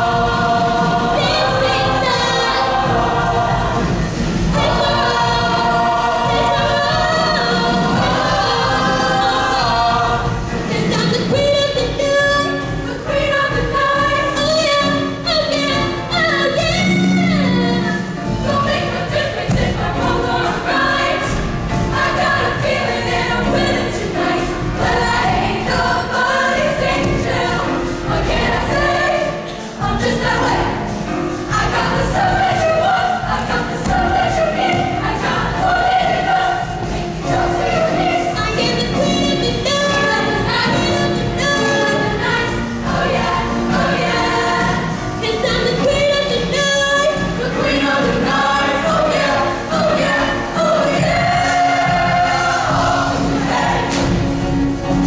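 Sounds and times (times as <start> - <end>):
choir singing pop: 0.0 - 55.0
instrumental accompaniment with beat: 0.0 - 55.0.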